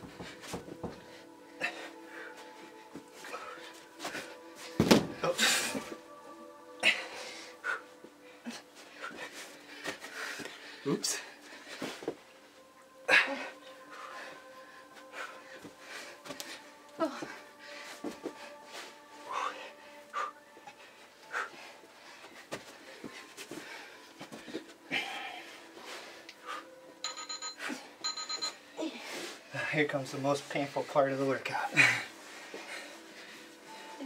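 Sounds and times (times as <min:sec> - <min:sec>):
people panting: 0:00.0 - 0:30.0, 0:30.6 - 0:34.0
faint music: 0:00.0 - 0:34.0
thumps on carpeted floor: 0:04.8 - 0:05.2.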